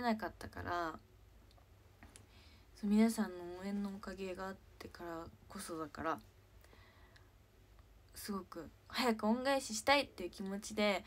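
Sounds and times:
woman speaking: 0.0s - 1.0s, 2.8s - 6.3s, 8.1s - 11.0s.

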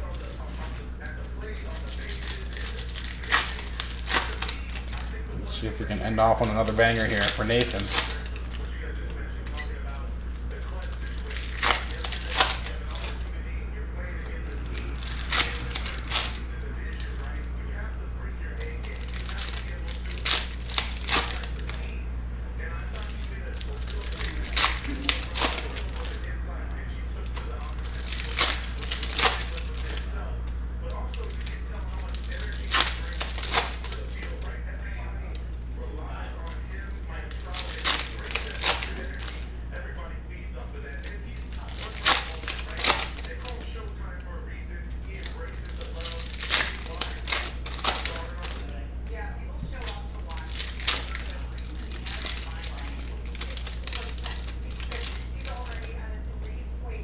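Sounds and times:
cards being handled: 0.0s - 13.3s, 30.9s - 35.5s, 36.2s - 39.6s, 40.8s - 44.0s, 44.9s - 48.8s, 49.7s - 56.0s
foil wrappers tearing and crinkling: 0.0s - 22.0s, 22.6s - 56.2s
steady low hum: 0.0s - 57.0s.

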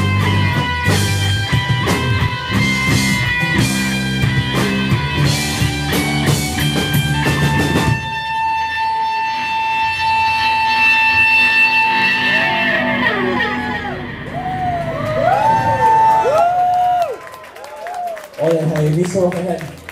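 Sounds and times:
guitar feedback: 0.0s - 17.1s
rock band playing: 0.0s - 18.0s.

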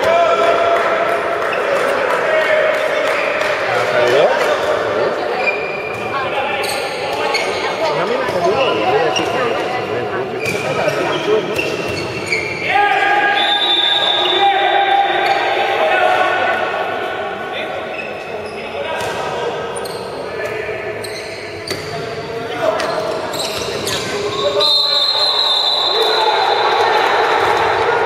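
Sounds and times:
shouts and voices: 12.6s - 17.9s, 24.3s - 28.0s.

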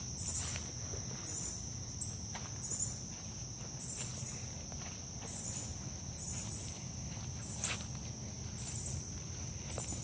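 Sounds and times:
insect high-pitched drone: 0.0s - 10.0s
pulsing higher insect call: 0.0s - 10.0s.

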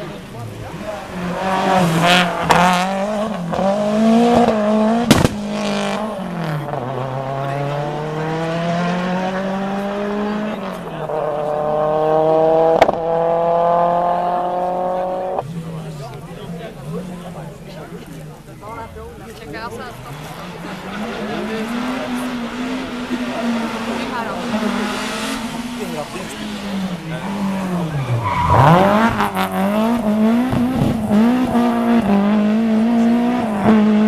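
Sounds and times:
rally car engine at full throttle: 0.0s - 34.0s.

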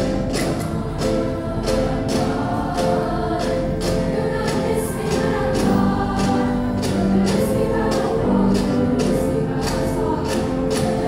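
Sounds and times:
choir of female voices singing: 0.0s - 11.0s
sharp percussive taps: 0.0s - 11.0s.

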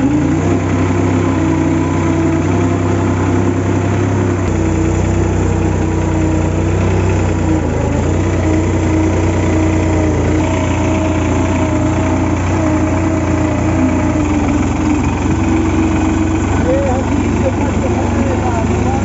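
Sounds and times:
tractor diesel engine running: 0.0s - 19.0s.

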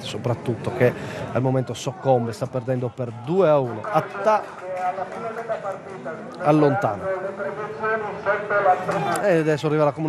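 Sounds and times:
man commentating: 0.0s - 10.0s.

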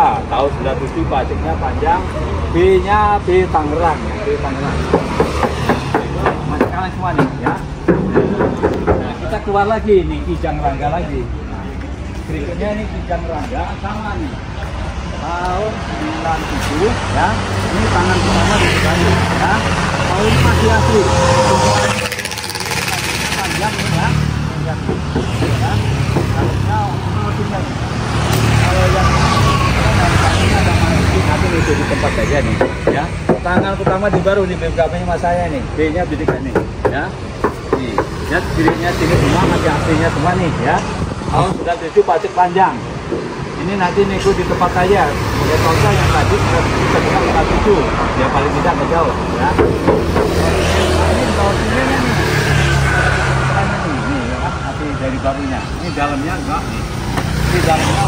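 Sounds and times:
road traffic passing: 0.0s - 58.0s
vehicle engines rumbling: 0.0s - 58.0s.

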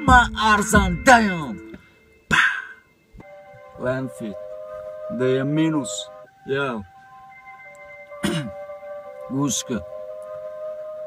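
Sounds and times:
synth tone from hip-hop beat: 0.0s - 11.0s.

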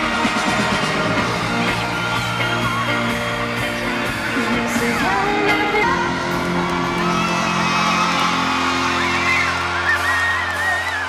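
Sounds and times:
live pop band playing: 0.0s - 11.0s
person singing: 3.8s - 7.1s.

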